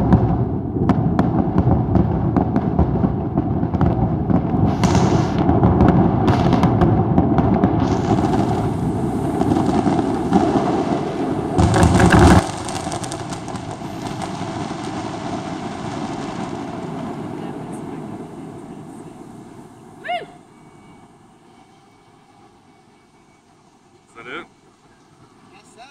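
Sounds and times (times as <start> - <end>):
distant noise and echo: 0.0 - 25.5
fireworks crackling and bangs: 0.0 - 25.9.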